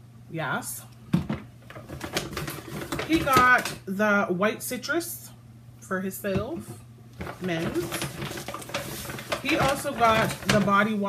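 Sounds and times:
plastic bottles clicking and tapping: 1.2 - 3.8, 7.2 - 10.9.

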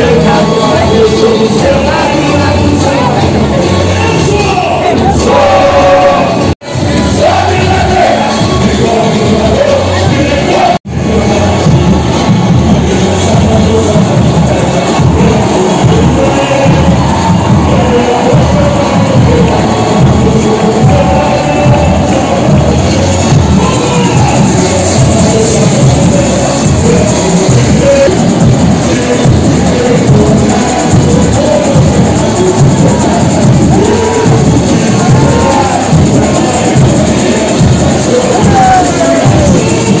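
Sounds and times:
crowd noise: 0.0 - 40.0
samba drums: 0.0 - 40.0
sung vocals: 0.0 - 40.0.

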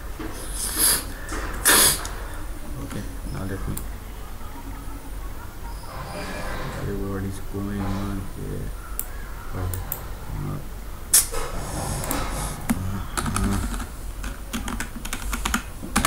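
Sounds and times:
computer keyboard typing: 12.0 - 16.0.

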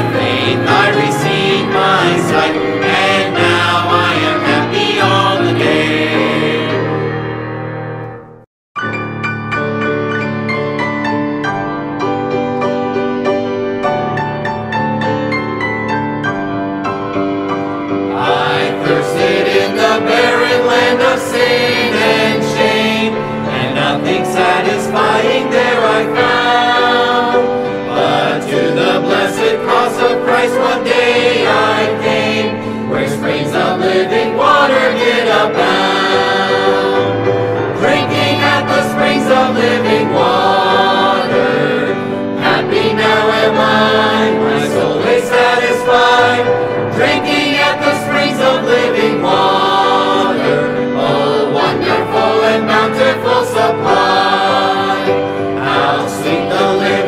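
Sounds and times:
choir singing a gospel hymn: 0.0 - 7.5, 18.0 - 57.0.

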